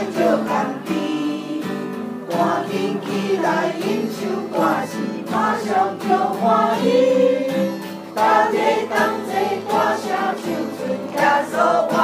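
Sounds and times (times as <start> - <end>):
congregation singing a hymn: 0.0 - 12.0
strummed acoustic guitar: 0.0 - 12.0.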